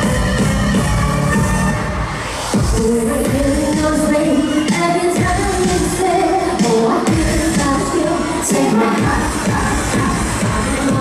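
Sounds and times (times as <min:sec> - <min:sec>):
pop backing track with beat: 0:00.0 - 0:11.0
person singing live: 0:02.5 - 0:11.0.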